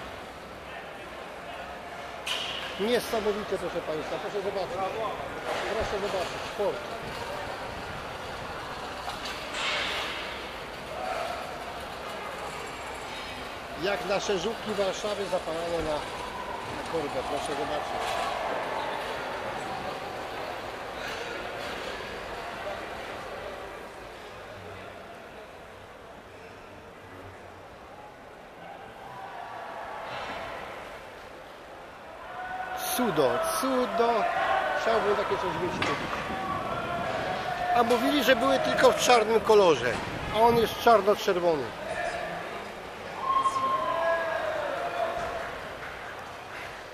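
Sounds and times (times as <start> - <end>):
exhibition hall din: 0.0 - 46.9.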